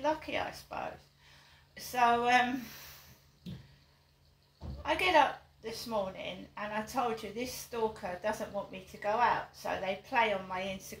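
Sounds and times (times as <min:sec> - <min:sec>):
woman talking: 0:00.0 - 0:01.0, 0:01.8 - 0:02.8, 0:04.8 - 0:11.0
low steady hum: 0:00.0 - 0:11.0.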